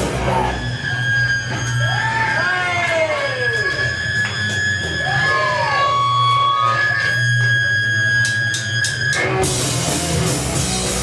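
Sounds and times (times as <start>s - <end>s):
electric guitar feedback: 0.0s - 11.0s.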